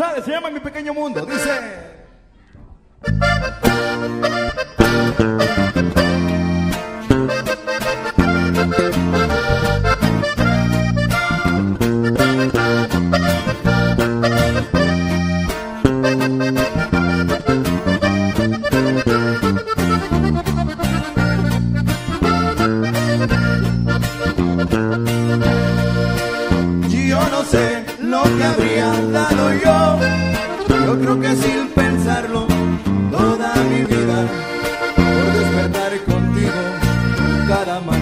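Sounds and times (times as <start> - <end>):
bass notes: 2.4 - 38.0
plucked guitar: 2.6 - 38.0
accordion: 3.0 - 38.0.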